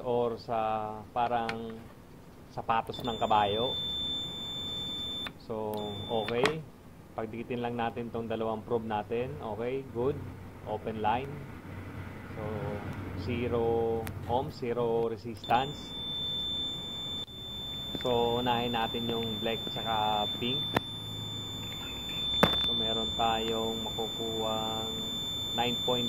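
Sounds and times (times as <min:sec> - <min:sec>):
meter continuity beep: 0:02.9 - 0:06.6, 0:15.4 - 0:26.0.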